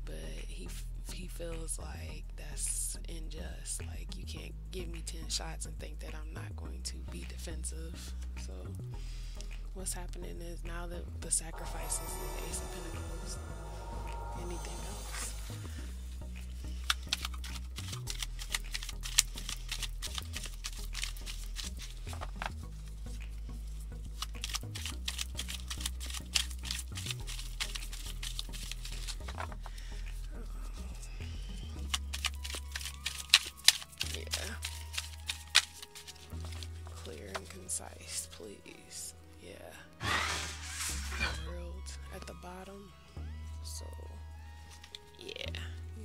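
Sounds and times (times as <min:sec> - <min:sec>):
background music with low bass: 0:00.0 - 0:46.0
cards being shuffled by hand: 0:16.4 - 0:30.3, 0:31.6 - 0:37.6, 0:44.7 - 0:45.2.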